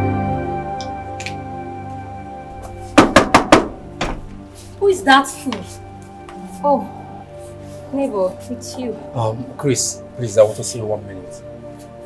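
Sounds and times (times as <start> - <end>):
soft background music: 0.0 - 12.0
knocking on a door: 3.0 - 4.3.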